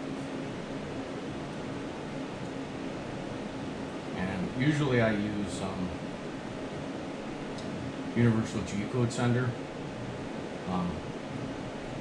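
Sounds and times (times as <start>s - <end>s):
water chiller fan and pump whirring: 0.0s - 12.0s.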